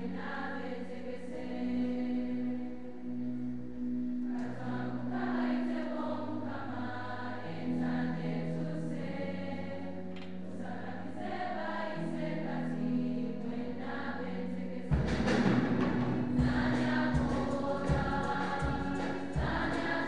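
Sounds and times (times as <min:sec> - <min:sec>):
girls' choir singing a hymn: 0:00.0 - 0:20.0.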